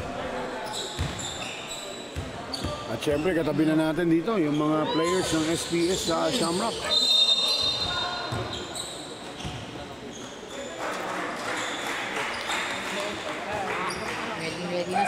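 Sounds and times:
voices in a hall: 0.0s - 15.0s
sneaker squeaks: 0.6s - 3.5s, 4.4s - 10.8s.

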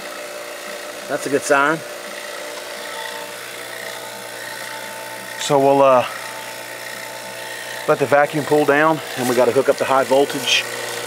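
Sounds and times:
vacuum pump humming: 0.0s - 11.0s.

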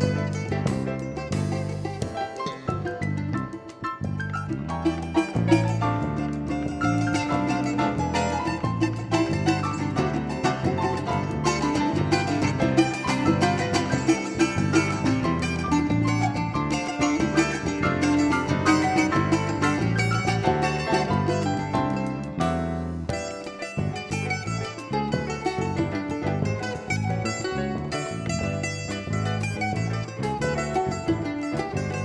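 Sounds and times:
drums: 0.0s - 32.0s
electric bass: 0.0s - 32.0s
plucked acoustic string instrument: 0.0s - 32.0s
stage piano: 0.0s - 32.0s.

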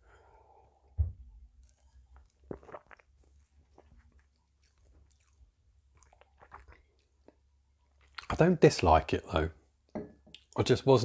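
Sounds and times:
man sipping and swallowing: 1.6s - 8.3s
lip and tongue clicks: 3.7s - 7.4s.

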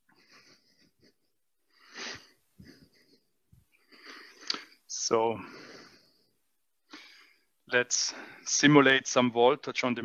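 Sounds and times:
man breathing heavily: 0.0s - 8.5s.

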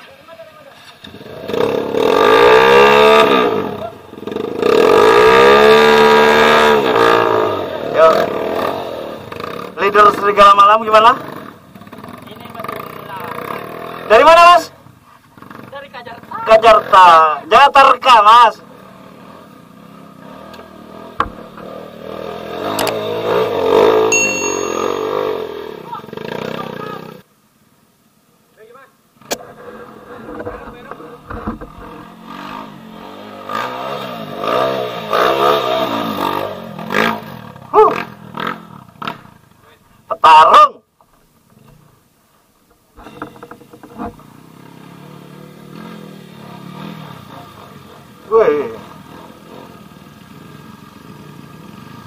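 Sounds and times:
motorcycle engines revving: 0.0s - 27.3s, 29.2s - 39.8s, 43.0s - 52.0s.

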